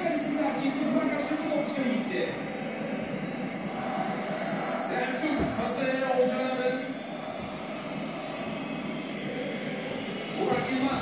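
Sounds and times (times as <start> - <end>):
stadium crowd noise over loudspeakers: 0.0 - 11.0.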